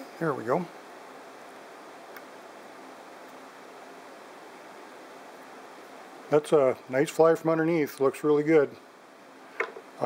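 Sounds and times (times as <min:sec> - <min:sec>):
low steady recording hiss: 0:00.0 - 0:10.0.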